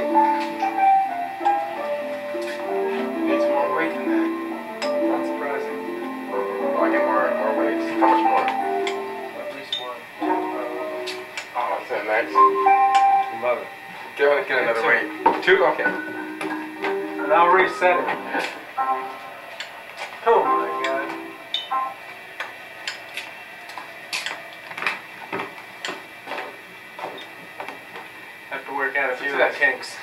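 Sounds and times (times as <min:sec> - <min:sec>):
clock mechanism melody: 0:00.0 - 0:24.6.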